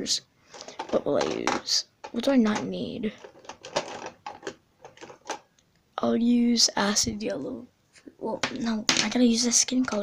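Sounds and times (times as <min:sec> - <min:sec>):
plastic markers clattering: 0:00.5 - 0:05.5, 0:08.4 - 0:10.0.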